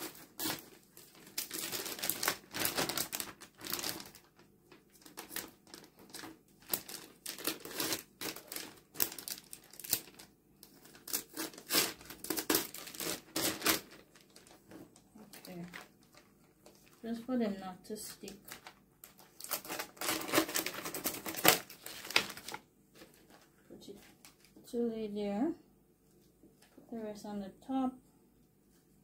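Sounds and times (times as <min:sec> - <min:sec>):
scissors cutting plastic: 0:00.0 - 0:04.1, 0:05.1 - 0:14.0, 0:18.2 - 0:22.5
plastic bag crinkling: 0:00.0 - 0:17.3, 0:18.0 - 0:24.6.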